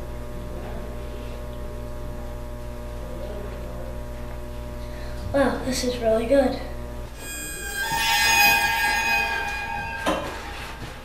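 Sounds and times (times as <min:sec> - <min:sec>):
high chord-like ringing tone: 0:07.1 - 0:11.0.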